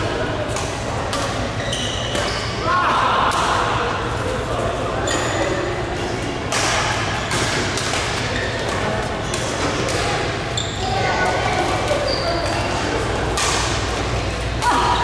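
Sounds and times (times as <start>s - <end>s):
low hum of hall: 0.0s - 15.0s
shoe squeaks on court floor: 1.6s - 2.6s, 10.5s - 10.9s, 11.9s - 12.7s.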